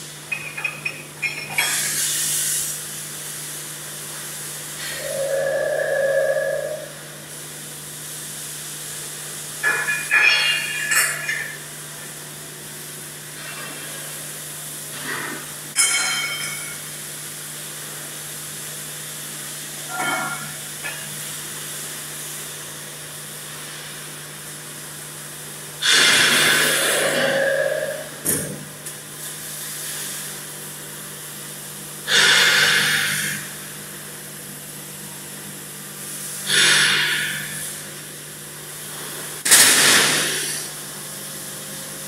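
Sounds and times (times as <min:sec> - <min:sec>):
factory machinery hum: 0:00.0 - 0:42.0.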